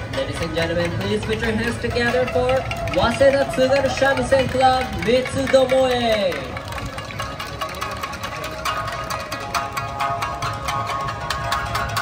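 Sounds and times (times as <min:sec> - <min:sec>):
shamisen ensemble playing: 0:06.4 - 0:12.0.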